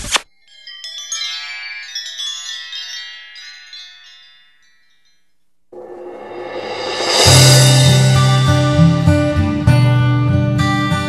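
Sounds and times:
wind-chime cascade: 0.3 - 9.4.

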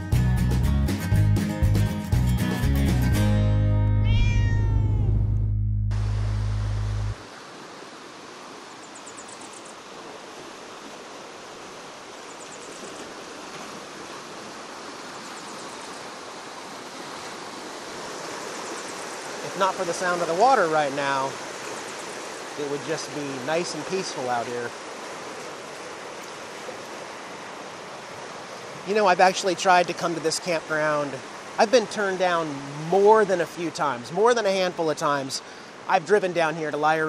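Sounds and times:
music: 0.0 - 7.1
cat meowing: 4.0 - 5.4
low held tone: 4.0 - 7.2
river rushing over rocks: 6.0 - 37.0.

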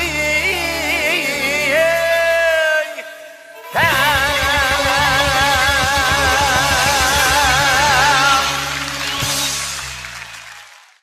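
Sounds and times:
man singing long vibrato note: 0.0 - 8.9
band accompaniment: 3.6 - 11.0.

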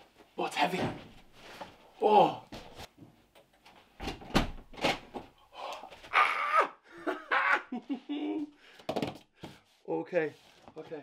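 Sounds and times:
man laughing breathlessly: 6.8 - 8.6.

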